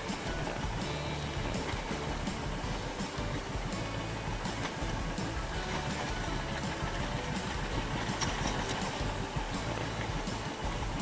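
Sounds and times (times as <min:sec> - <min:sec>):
small boat engine running: 0:00.0 - 0:11.0.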